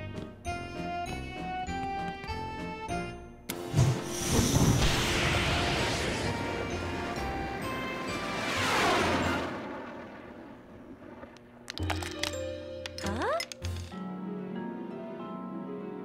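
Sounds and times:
background music: 0:00.0 - 0:10.3, 0:11.4 - 0:16.0.

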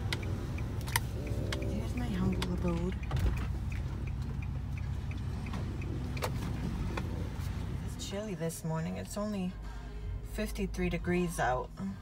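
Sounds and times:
light regular ticking: 0:00.0 - 0:07.9
car engine and road rumble: 0:00.0 - 0:12.0.

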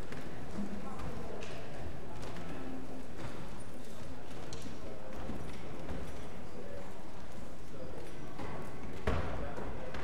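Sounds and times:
murmur of conversation: 0:00.0 - 0:10.0.

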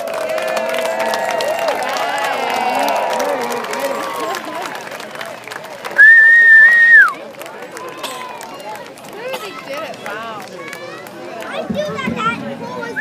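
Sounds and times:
spectators talking: 0:00.0 - 0:13.0
loud whistle: 0:06.0 - 0:07.1.

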